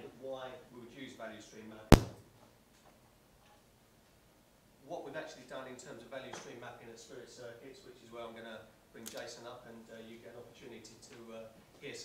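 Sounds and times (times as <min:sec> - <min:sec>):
sharp click: 0:01.9 - 0:02.2.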